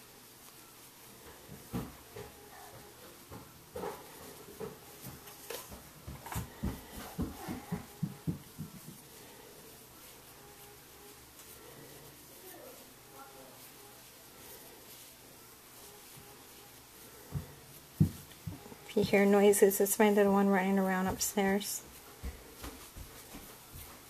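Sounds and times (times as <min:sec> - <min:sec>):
child running footsteps upstairs: 0:01.2 - 0:09.1, 0:17.3 - 0:19.5, 0:20.3 - 0:24.0.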